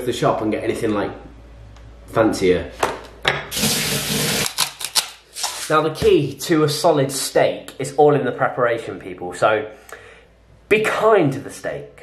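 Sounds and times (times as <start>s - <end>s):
kitchen tap running: 3.5s - 4.8s.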